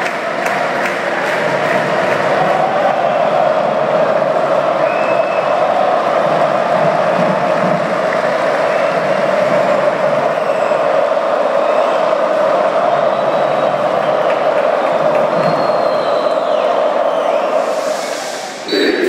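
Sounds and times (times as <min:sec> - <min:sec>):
crowd cheering in an arena: 0:00.0 - 0:19.0.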